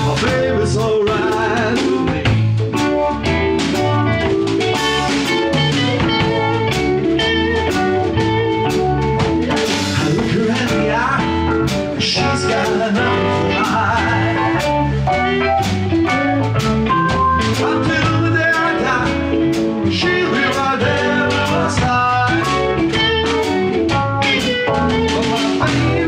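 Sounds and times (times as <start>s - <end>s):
drum kit beat: 0.0s - 26.0s
keyboard chords and melody: 0.0s - 26.0s.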